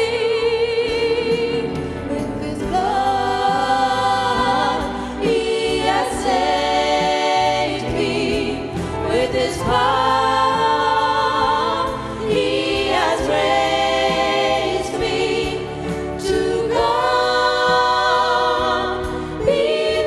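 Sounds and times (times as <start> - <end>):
vocal ensemble singing in harmony: 0.0 - 20.0.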